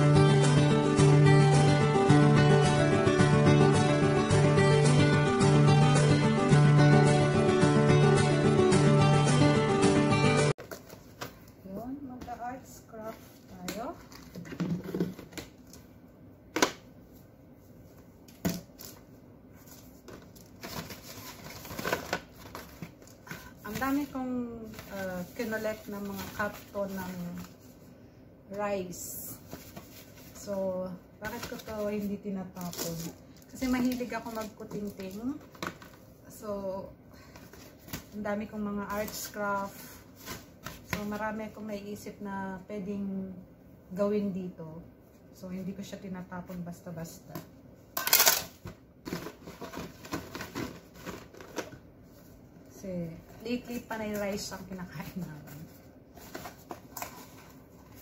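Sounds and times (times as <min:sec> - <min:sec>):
cardboard rustling: 0:19.6 - 0:27.8, 0:29.4 - 0:30.5, 0:38.9 - 0:41.2, 0:48.2 - 0:52.4, 0:53.3 - 0:58.0.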